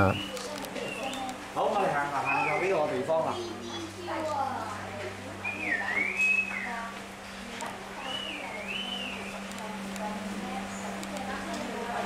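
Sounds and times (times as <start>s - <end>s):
women talking: 0.2s - 1.5s, 3.5s - 12.0s
steady low hum: 3.4s - 12.0s.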